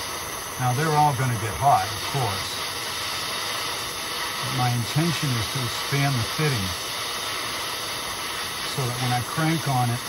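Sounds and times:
propane torch hissing: 0:00.0 - 0:10.0.

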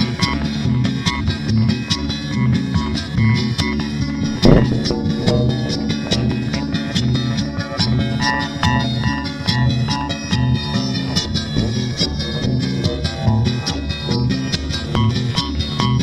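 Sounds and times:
experimental guitar music: 0:00.0 - 0:16.0
loud hit: 0:04.1 - 0:07.3.

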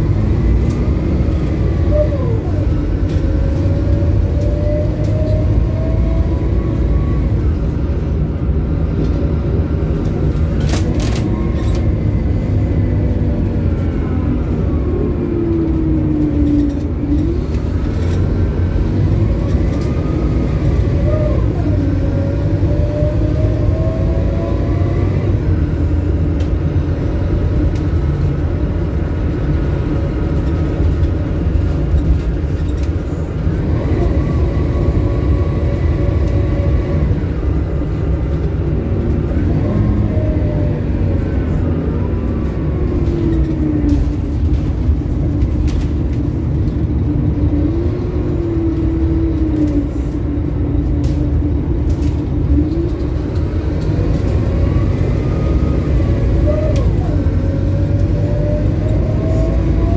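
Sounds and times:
bus engine rumble: 0:00.0 - 0:59.9.

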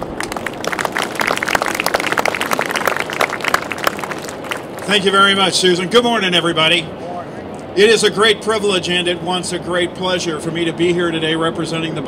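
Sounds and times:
crowd applauding: 0:00.0 - 0:05.5.

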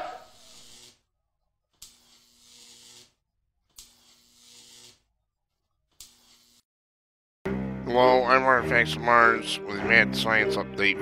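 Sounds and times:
hissing electric buzz: 0:00.2 - 0:01.0, 0:01.8 - 0:03.2, 0:03.8 - 0:05.0
electric spark click: 0:00.3 - 0:01.0, 0:01.8 - 0:05.0, 0:06.0 - 0:06.6.

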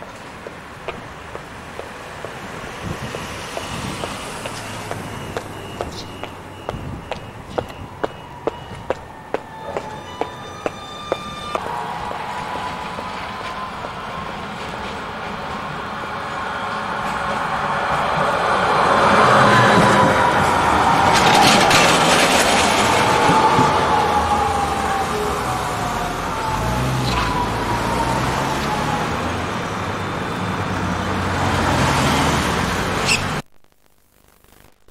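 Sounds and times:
tram rolling past: 0:00.0 - 0:32.9
road traffic: 0:00.0 - 0:33.5
tram whine falling in pitch: 0:01.9 - 0:26.7.

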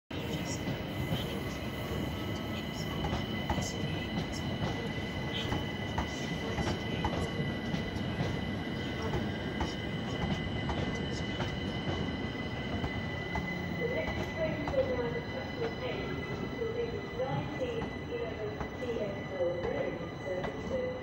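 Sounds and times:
high-pitched train whine: 0:00.1 - 0:21.0
train wheels rumbling on track: 0:00.1 - 0:21.0.

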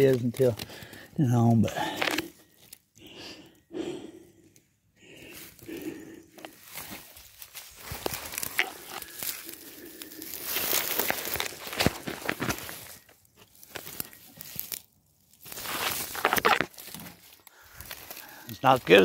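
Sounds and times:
dry stalks rustling and crackling: 0:00.0 - 0:19.0
footsteps through tall grass: 0:05.2 - 0:19.0.

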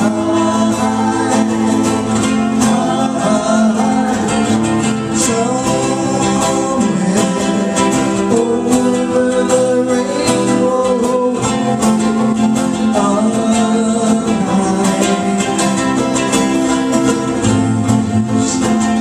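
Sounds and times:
acoustic guitar: 0:00.0 - 0:19.0
ukulele strumming: 0:00.0 - 0:19.0.

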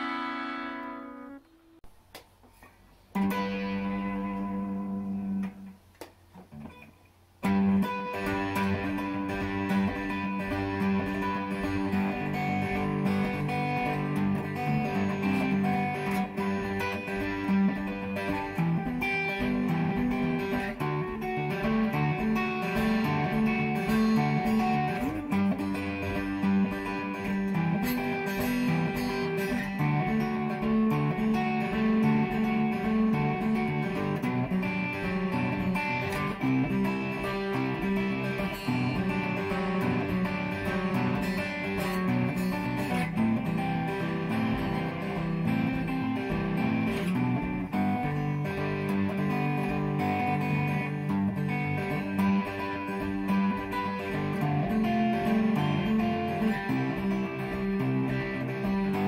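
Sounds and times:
fingerpicked electric guitar: 0:00.0 - 0:59.0.

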